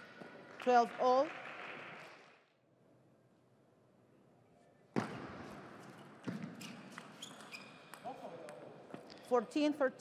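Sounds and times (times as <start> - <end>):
shoes squeaking on floor: 5.0 - 8.1.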